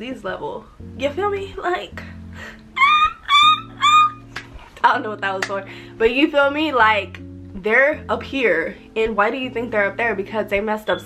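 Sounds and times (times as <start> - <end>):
soft guitar music: 0.0 - 11.0
woman yipping like a dog: 2.8 - 4.2.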